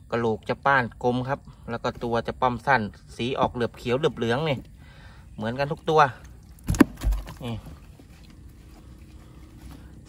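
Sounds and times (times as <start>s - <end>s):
dull thump: 6.6s - 7.6s.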